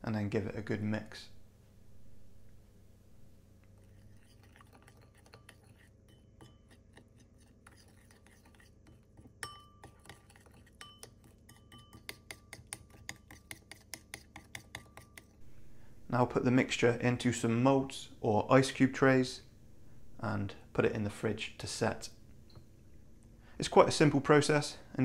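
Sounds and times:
teaspoon clinking against ceramic bowl: 0:04.4 - 0:07.0, 0:07.9 - 0:15.3.

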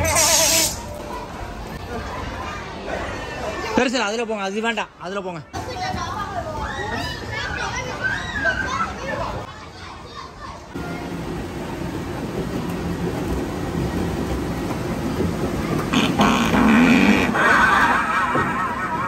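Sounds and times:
children chattering: 0:00.0 - 0:04.0, 0:05.6 - 0:19.0.

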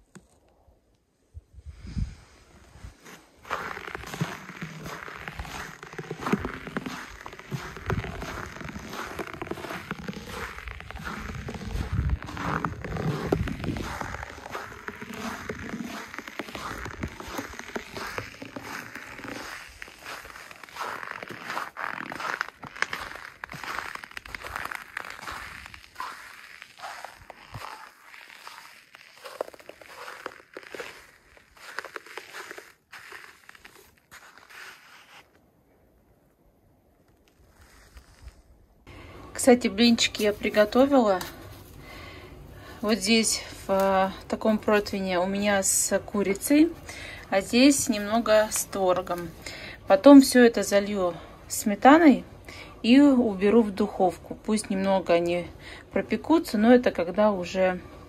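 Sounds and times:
wind rumbling on microphone: 0:01.3 - 0:03.0, 0:03.8 - 0:20.8
footsteps crunching in snow: 0:02.5 - 0:35.4, 0:37.2 - 0:38.5, 0:39.4 - 0:50.8.

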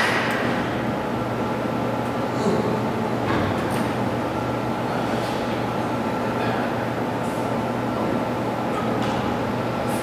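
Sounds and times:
constant low hum: 0:00.0 - 0:10.0.

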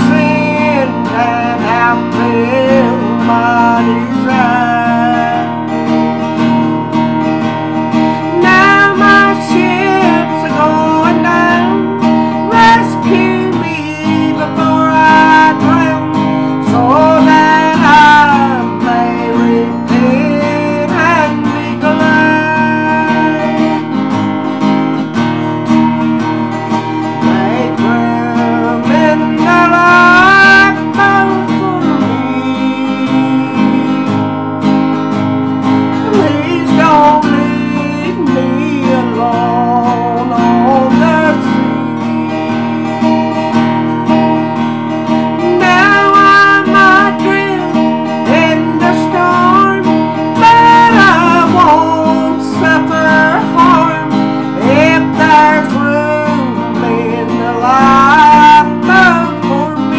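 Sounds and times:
acoustic guitar strumming: 0:00.0 - 0:59.9
person singing: 0:00.0 - 0:59.9.

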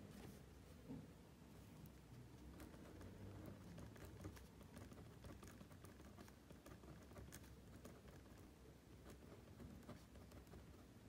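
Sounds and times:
low room hum: 0:00.0 - 0:11.0
pen writing on paper: 0:02.5 - 0:10.9.

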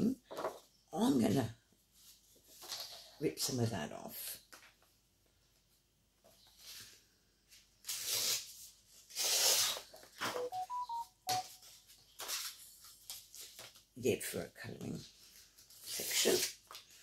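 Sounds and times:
paper tearing: 0:07.8 - 0:09.9, 0:15.8 - 0:16.7
short electronic beeps: 0:10.3 - 0:11.5.

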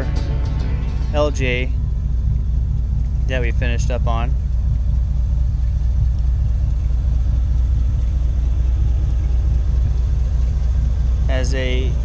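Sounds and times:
engine idling: 0:00.0 - 0:12.0.

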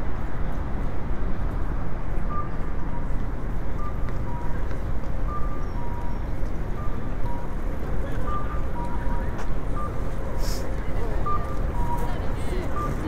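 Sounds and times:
street traffic: 0:00.0 - 0:13.0
crowd noise: 0:06.6 - 0:13.0.

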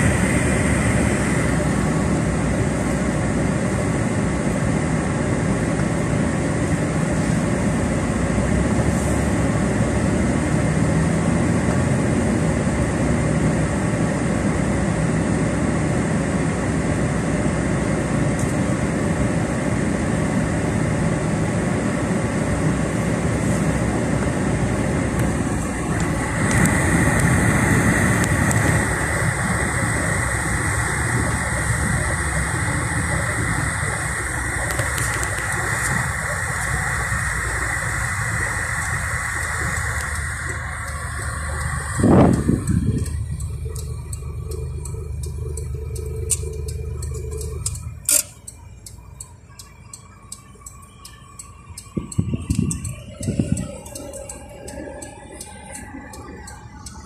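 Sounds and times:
car engine and road noise: 0:00.0 - 0:57.0
thin high whine: 0:18.0 - 0:57.0
quick ticks: 0:38.9 - 0:57.0.

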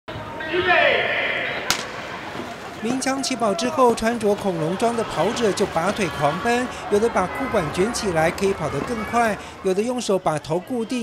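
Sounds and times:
crowd voices and calls: 0:00.1 - 0:11.0.

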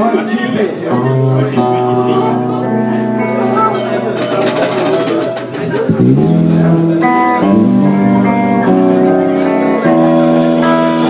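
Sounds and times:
electric guitar: 0:00.0 - 0:11.0
live blues band: 0:00.5 - 0:11.0
bass line: 0:05.9 - 0:11.0.

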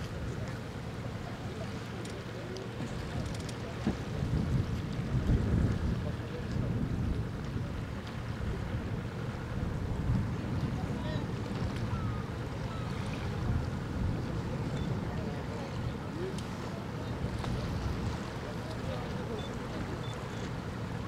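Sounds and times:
wind buffeting microphone: 0:02.8 - 0:18.5.

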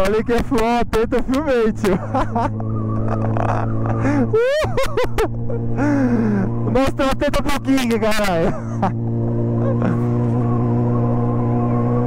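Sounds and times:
motorcycle engine humming: 0:00.0 - 0:12.0.

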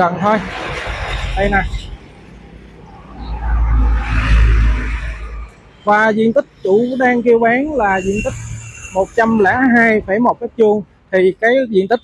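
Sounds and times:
truck passing on road: 0:00.3 - 0:05.8.

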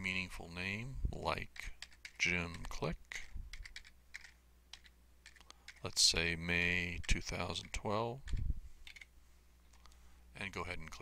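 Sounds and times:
computer keyboard typing: 0:01.5 - 0:06.1, 0:06.9 - 0:09.1.

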